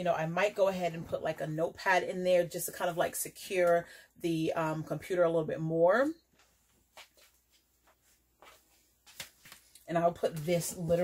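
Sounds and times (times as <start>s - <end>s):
notepad taps and rustles: 6.4s - 11.0s.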